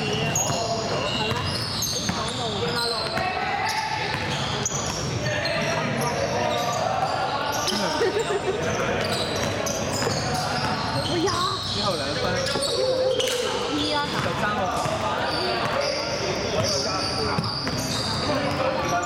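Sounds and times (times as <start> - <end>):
indistinct shouts and chatter: 0.0 - 19.0.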